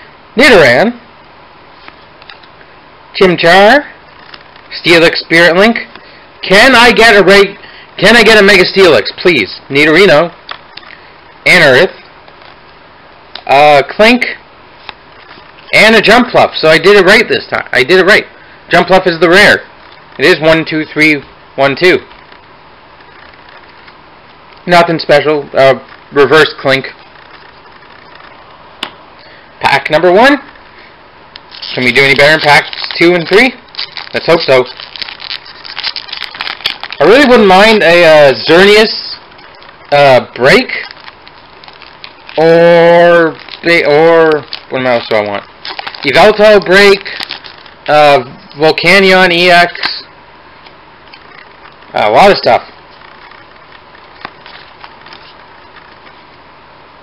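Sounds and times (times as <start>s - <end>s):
room tone hiss: 0.0s - 57.0s
cards sliding and rustling: 54.0s - 56.2s.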